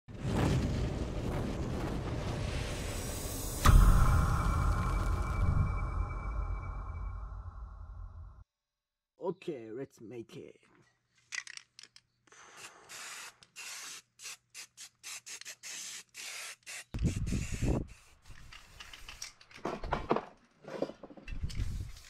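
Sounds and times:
loud low rumbles: 0.9s - 8.4s
spray paint can hissing: 12.6s - 19.3s.

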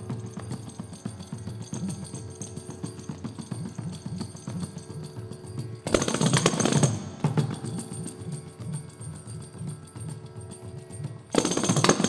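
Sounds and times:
fast hand drum strokes: 0.0s - 8.7s.

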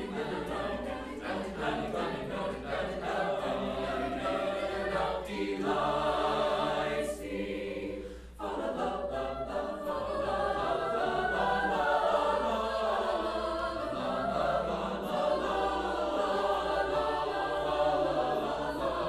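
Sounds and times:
a cappella choir singing: 0.0s - 19.0s.

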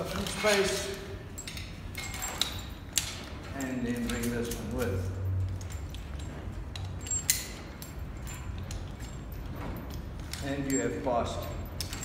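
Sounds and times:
metal hardware clicking and clinking: 0.0s - 12.0s.

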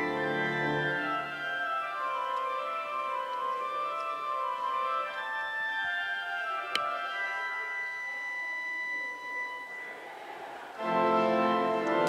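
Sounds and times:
pipe organ chord: 0.0s - 12.0s.

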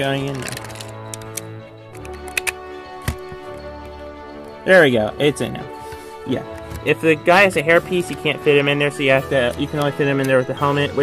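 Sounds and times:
background music: 0.0s - 11.0s
plastic pieces clicking: 0.2s - 3.3s.

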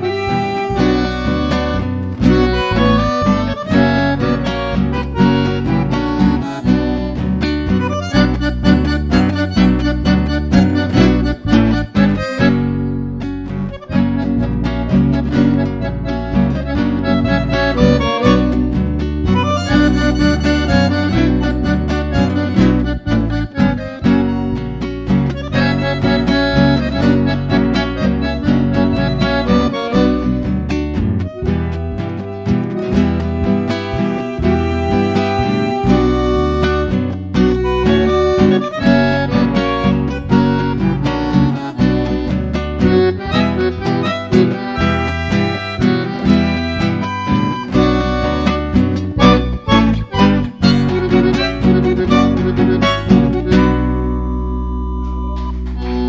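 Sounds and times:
acoustic guitar: 0.0s - 56.0s
bandoneon: 0.0s - 56.0s.

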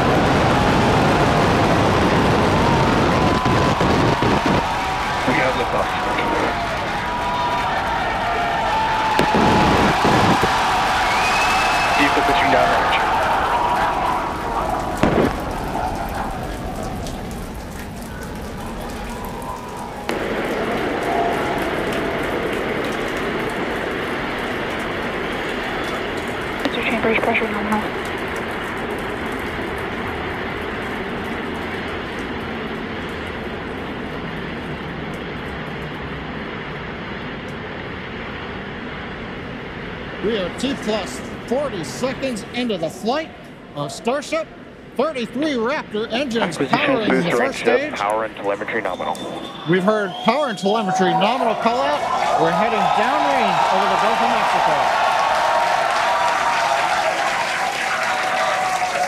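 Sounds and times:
crowd voices: 0.0s - 29.0s, 40.2s - 56.0s
rocket engines rumbling: 0.0s - 59.0s.

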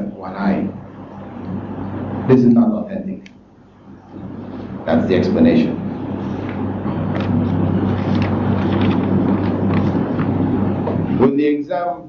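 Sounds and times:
low hum: 0.0s - 11.7s.

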